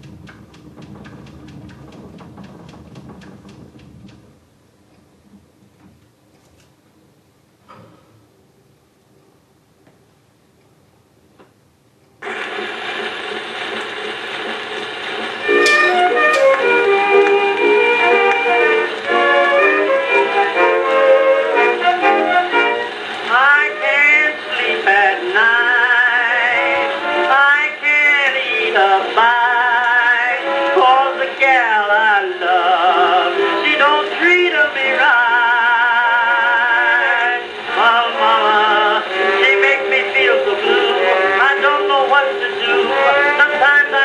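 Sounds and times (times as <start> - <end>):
phonograph playing jazz-blues: 0.0 - 4.5, 12.2 - 44.0
acoustic band recording: 0.0 - 6.0, 12.2 - 44.0
record surface hiss: 0.0 - 44.0.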